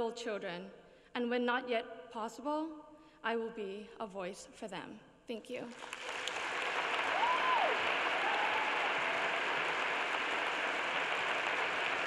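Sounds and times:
audience applauding: 5.7 - 12.0
high call from crowd: 6.9 - 12.0.

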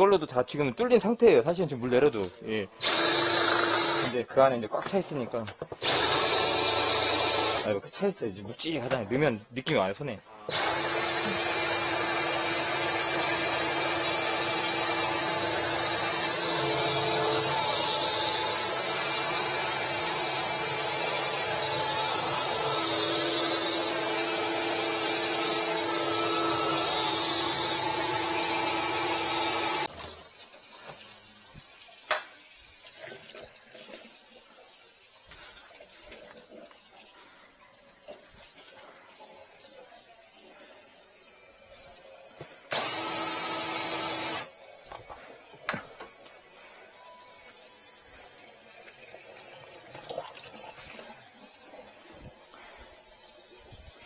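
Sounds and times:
drain-cleaning machine motor whine: 10.5 - 29.9, 42.7 - 44.5.

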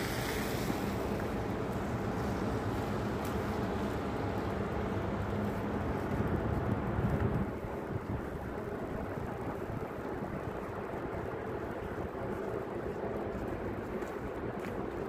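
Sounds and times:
traffic rumble: 0.0 - 15.0.

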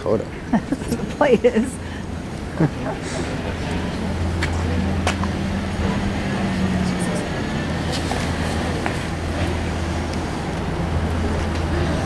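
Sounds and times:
car engine idling: 0.0 - 12.0
faint voices: 0.0 - 12.0.

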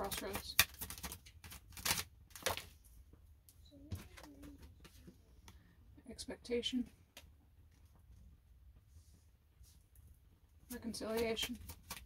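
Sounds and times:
handling cards: 0.0 - 2.8, 10.7 - 12.0.

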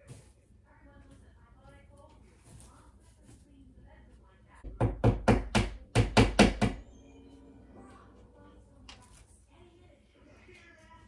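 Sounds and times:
hammer driving a nail: 4.7 - 6.8.

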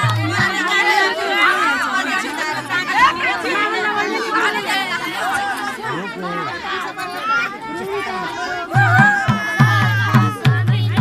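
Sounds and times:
hand drum beats: 0.0 - 0.6, 8.7 - 11.0
many people talking: 0.0 - 11.0.

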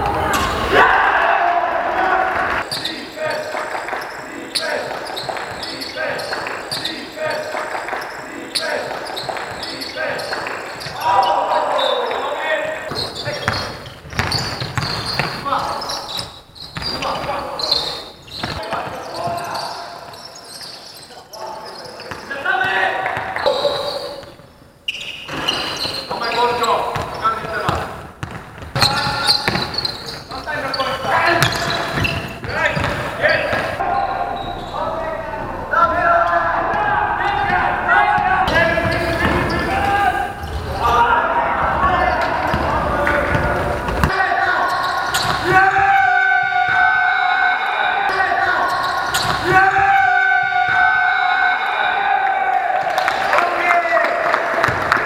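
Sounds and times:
players calling out: 0.0 - 55.0
basketball bouncing on hardwood: 13.4 - 15.4.

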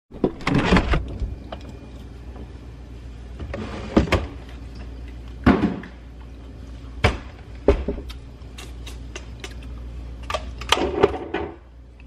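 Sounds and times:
refrigerator door opening: 0.1 - 1.4.

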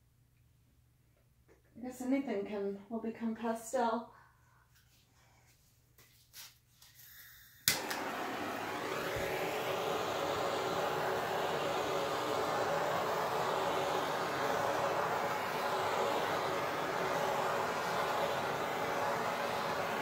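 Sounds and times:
gas torch hissing: 7.0 - 20.0
gas torch igniter click: 7.6 - 9.3.

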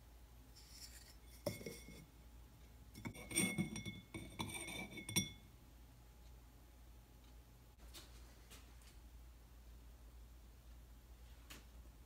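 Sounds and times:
glass jar clinking: 1.3 - 2.0, 3.0 - 5.4.

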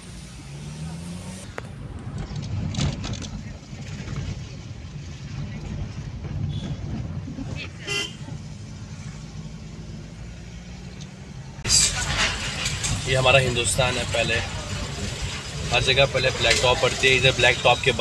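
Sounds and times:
car engine and tyres rumbling: 0.0 - 18.0
street traffic: 0.0 - 18.0
car horn toot: 7.8 - 8.2.

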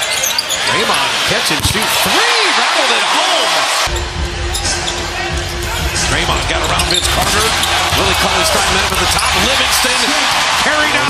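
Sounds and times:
loud crowd noise: 0.0 - 11.0.

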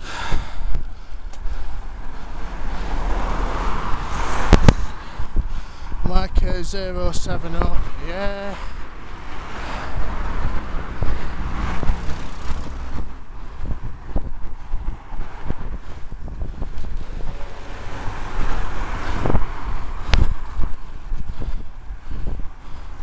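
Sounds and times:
cars overtaking: 0.0 - 23.0
wind buffeting microphone: 0.0 - 23.0.

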